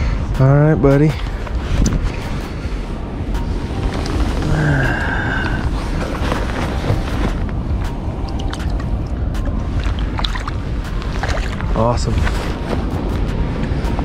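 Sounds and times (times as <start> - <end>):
wind rumbling on microphone: 0.0 - 14.0
shallow river flowing: 2.0 - 12.7.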